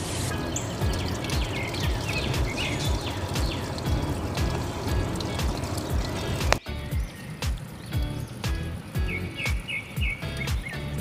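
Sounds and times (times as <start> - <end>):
high chirping notes: 0.3 - 10.9
music with steady beat and bass: 0.3 - 11.0.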